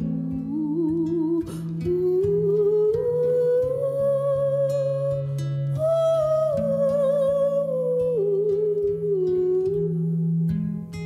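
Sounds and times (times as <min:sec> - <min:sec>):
woman humming a melody: 0:00.0 - 0:10.3
acoustic guitars playing chords: 0:00.0 - 0:11.0.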